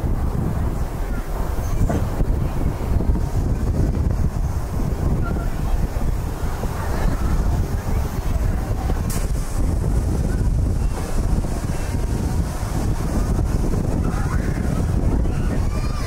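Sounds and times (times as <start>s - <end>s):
wind rushing over microphone: 0.0s - 16.0s.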